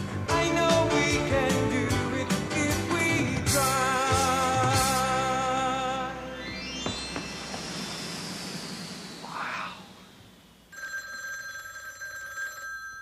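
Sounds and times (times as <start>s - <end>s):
telephone ringing: 10.7s - 13.0s.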